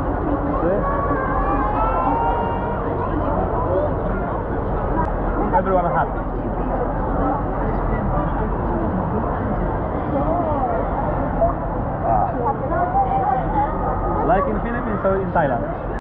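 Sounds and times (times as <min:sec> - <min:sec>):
indoor crowd hubbub: 0:00.0 - 0:16.0.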